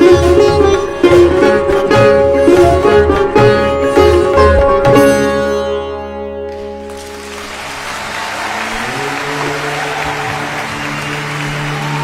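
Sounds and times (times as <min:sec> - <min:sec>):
plucked sitar notes: 0:00.0 - 0:07.0.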